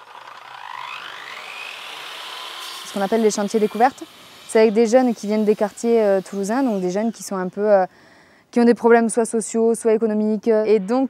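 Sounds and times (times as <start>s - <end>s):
saw motor whine: 0.0s - 7.9s.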